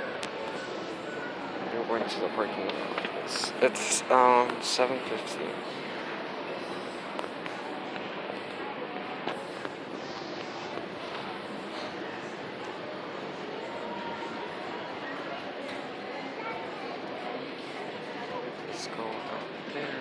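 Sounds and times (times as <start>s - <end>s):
indistinct background voices: 0.0s - 20.0s.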